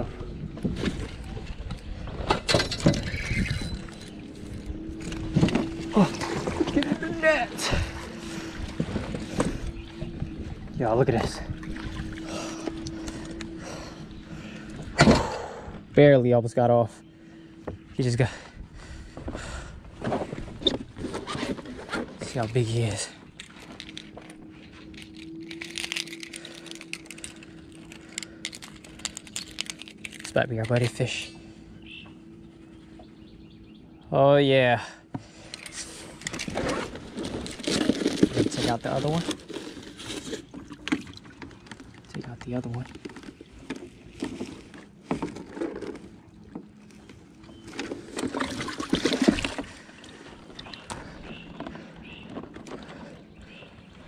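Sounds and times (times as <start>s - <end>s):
steady low hum: 0.0s - 54.0s
water sloshing and splashing: 0.6s - 15.9s, 35.2s - 54.0s
fishing lure clicking and rattling: 23.4s - 24.1s, 24.9s - 30.9s.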